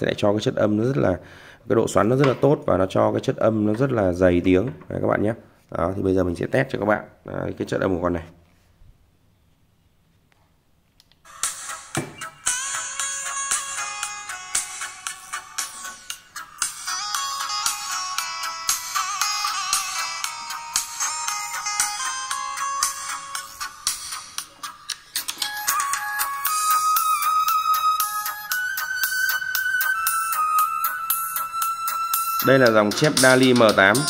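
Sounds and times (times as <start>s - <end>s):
bright thin music from speakers: 11.3s - 34.0s.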